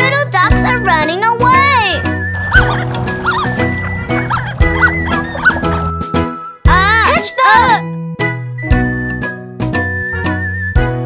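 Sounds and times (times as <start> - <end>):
bouncy backing music: 0.0 - 11.0.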